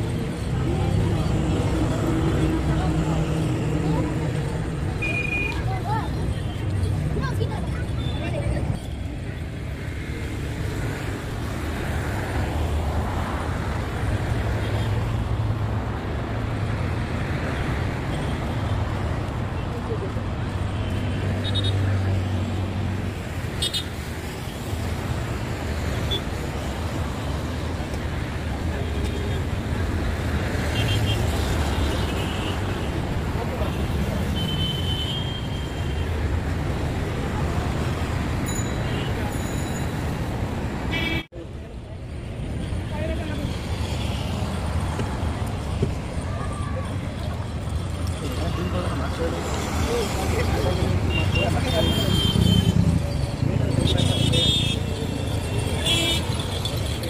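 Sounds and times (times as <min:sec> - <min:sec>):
indistinct voices: 0:00.0 - 0:09.6
road traffic: 0:00.0 - 0:57.0.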